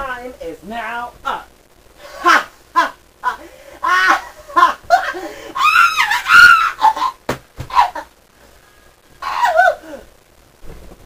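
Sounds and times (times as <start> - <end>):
person screaming: 2.2 - 8.1, 9.2 - 10.1.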